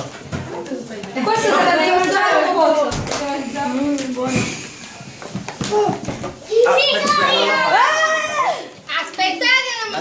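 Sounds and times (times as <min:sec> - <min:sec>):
excited high-pitched voices: 0:05.7 - 0:10.0.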